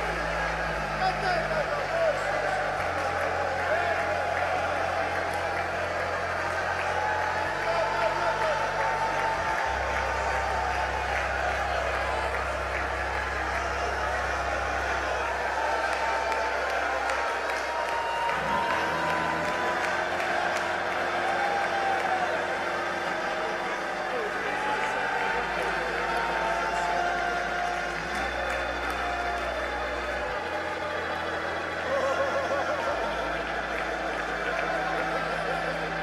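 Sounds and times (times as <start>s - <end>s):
low keyboard chords: 0.0s - 36.0s
people clapping: 0.0s - 36.0s.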